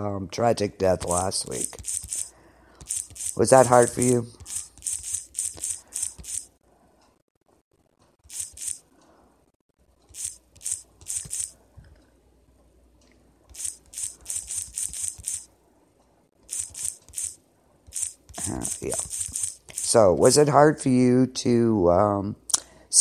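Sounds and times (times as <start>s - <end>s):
computer keyboard typing: 0.9s - 6.5s, 8.2s - 8.8s, 10.1s - 11.6s, 13.5s - 15.5s, 16.4s - 20.4s.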